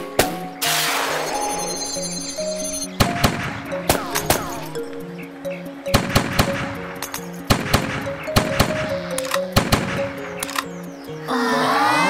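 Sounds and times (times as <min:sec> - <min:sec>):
background music with held notes: 0:00.0 - 0:12.0
cartoon gunshots: 0:03.0 - 0:04.6.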